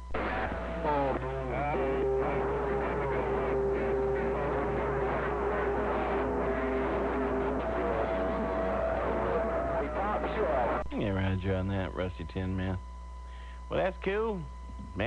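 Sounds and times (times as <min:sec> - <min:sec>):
radio carrier whistles: 0:00.0 - 0:10.9
garbled radio voices: 0:00.0 - 0:12.8.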